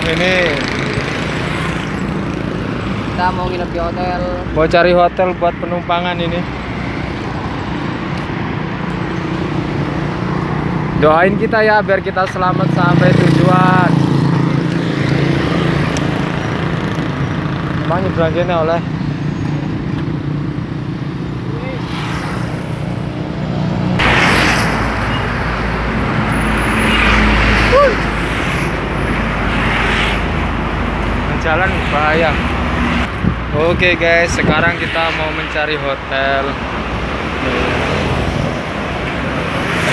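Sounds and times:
traffic noise: 0.0 - 39.9.

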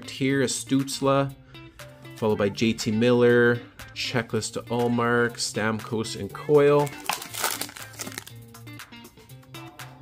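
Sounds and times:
foil wrapper crinkling: 7.0 - 8.4.

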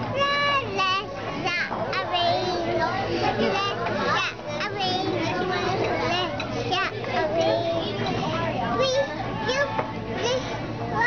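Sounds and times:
toddler girl singing: 0.1 - 8.2.

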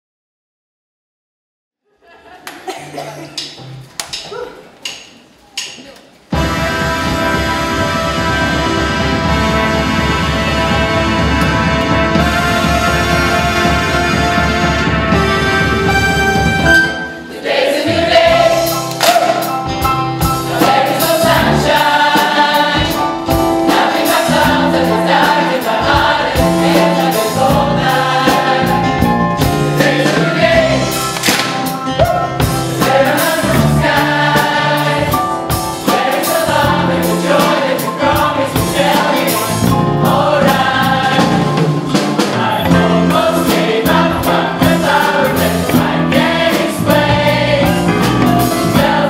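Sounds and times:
live band playing: 3.3 - 49.0
gospel choir singing: 6.3 - 49.0
bass guitar: 6.4 - 17.0, 22.8 - 49.0.

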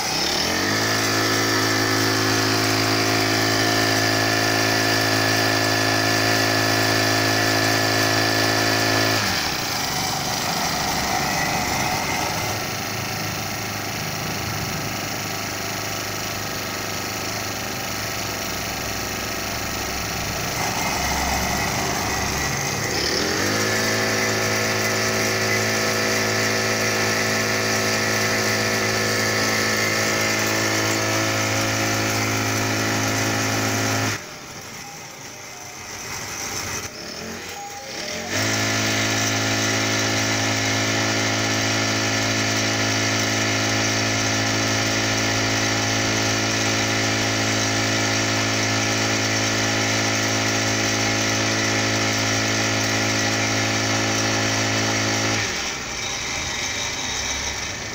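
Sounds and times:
cultivator engine revving: 0.0 - 57.9.

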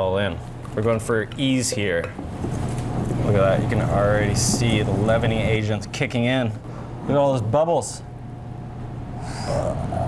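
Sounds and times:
steady low hum: 0.0 - 10.0
whisk stirring thick batter: 2.2 - 6.2.

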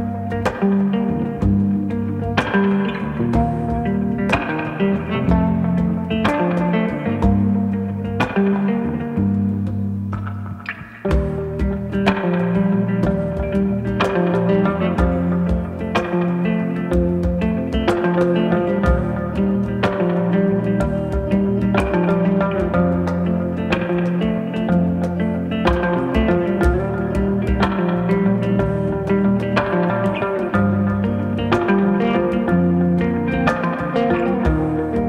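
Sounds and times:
congas played by hand: 0.0 - 35.0
electric guitars playing melody: 0.0 - 35.0.

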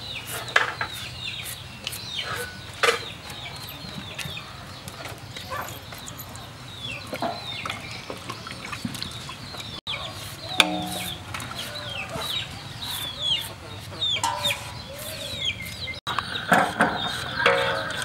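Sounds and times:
chickens clucking: 0.1 - 5.8, 6.4 - 18.0
peelers scraping carrots in water: 10.2 - 18.0.

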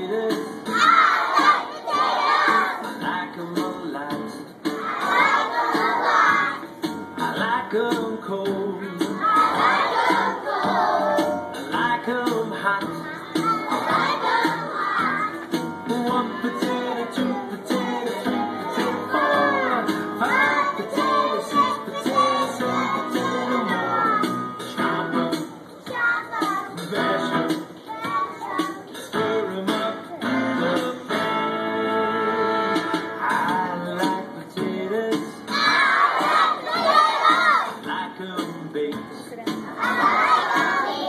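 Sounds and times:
acoustic guitar song from cd player: 0.0 - 36.8, 37.4 - 41.0
children singing: 0.3 - 3.0, 4.8 - 6.7, 9.0 - 11.7, 13.0 - 24.7, 25.9 - 31.0, 33.0 - 34.3, 35.1 - 37.8, 39.7 - 41.0.

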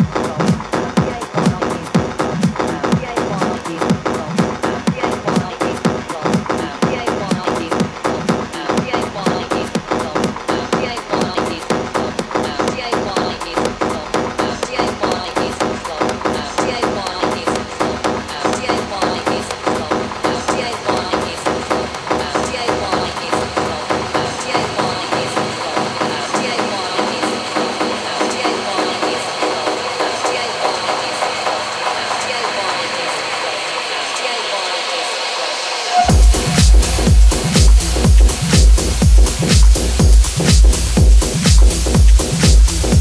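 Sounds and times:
pulsing synth pattern: 0.0 - 34.6, 35.4 - 43.0
high synth tone: 35.7 - 39.6.

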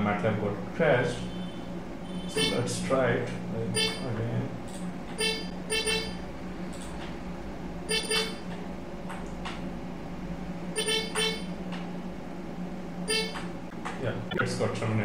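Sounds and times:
steady low hum: 0.0 - 15.0
vehicle horn toots: 1.2 - 2.7.

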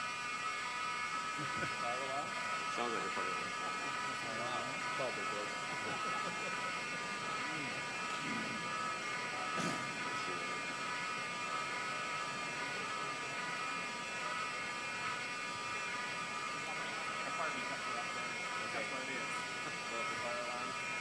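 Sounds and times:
fire alarm buzzing: 0.0 - 21.0.

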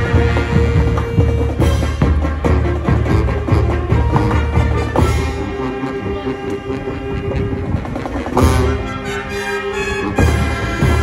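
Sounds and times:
brass band sustained chord: 0.0 - 11.0.

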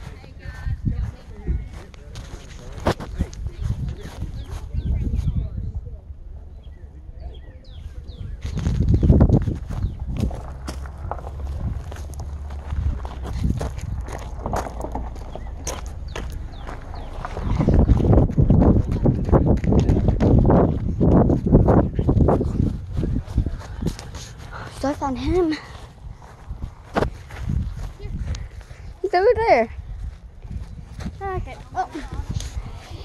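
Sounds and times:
footsteps crunching on gravel: 0.0 - 4.7, 8.5 - 28.8
wind buffeting microphone: 0.0 - 33.0.

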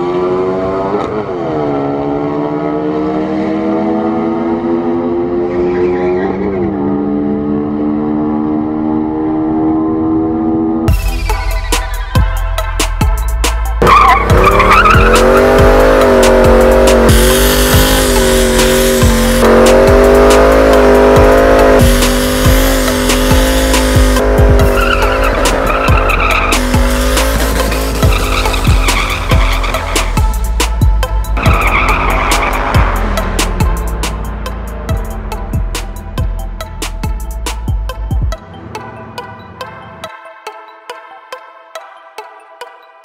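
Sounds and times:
car engine revving: 0.0 - 12.0, 12.6 - 40.1
music: 10.8 - 43.0
tyres squealing: 24.6 - 30.1.

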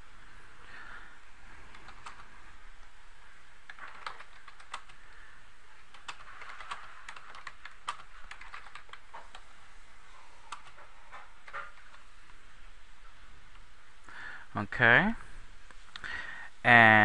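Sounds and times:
faint steady hiss: 0.0 - 17.0
keyboard typing: 1.6 - 2.9, 3.6 - 5.1, 5.8 - 9.5, 10.5 - 12.1.

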